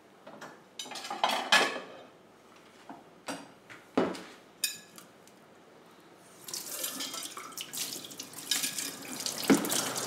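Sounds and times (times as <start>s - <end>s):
water splashing: 6.6s - 10.0s
tap running into steel sink: 9.4s - 10.0s.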